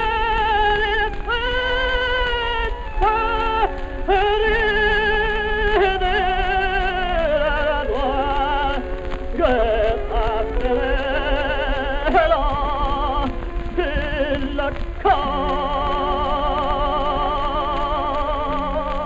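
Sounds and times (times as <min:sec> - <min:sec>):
male opera singer: 0:00.0 - 0:19.0
sustained accompaniment: 0:00.0 - 0:19.0.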